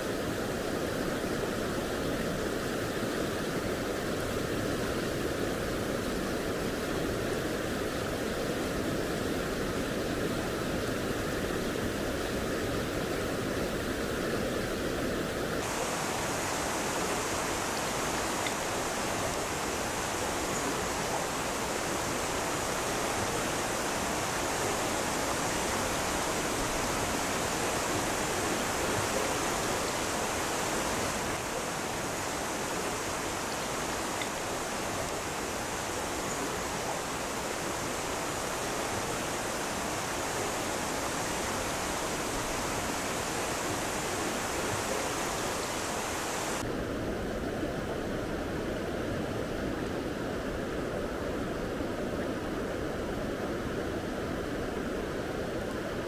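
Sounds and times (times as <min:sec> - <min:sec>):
stream rushing over stones: 0:15.6 - 0:47.0.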